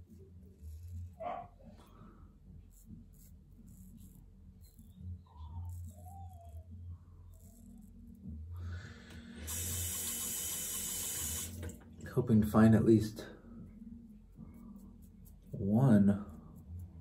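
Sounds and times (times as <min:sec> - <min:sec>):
sink tap running: 0:09.5 - 0:11.8.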